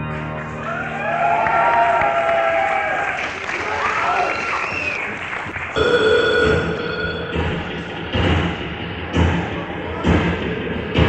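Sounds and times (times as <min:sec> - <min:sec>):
crowd applause: 0:00.0 - 0:08.0
electronic synthesizer tone: 0:05.8 - 0:08.4.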